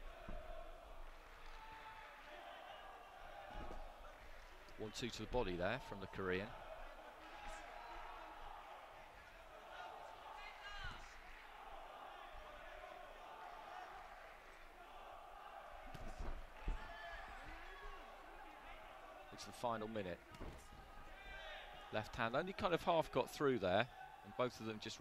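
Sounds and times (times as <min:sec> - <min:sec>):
low crowd murmur: 0:00.0 - 0:22.2.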